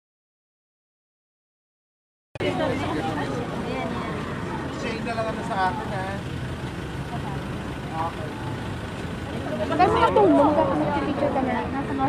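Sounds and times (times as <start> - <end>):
crowd voices: 2.4 - 12.0
vehicle engine idling: 2.4 - 12.0.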